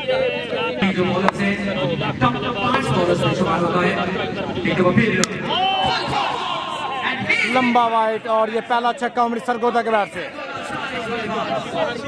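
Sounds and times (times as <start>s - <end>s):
men shouting: 5.4s - 12.0s.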